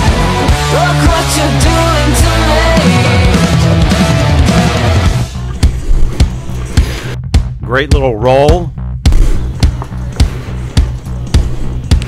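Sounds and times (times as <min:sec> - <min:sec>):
instrumental rock music: 0:00.0 - 0:07.8.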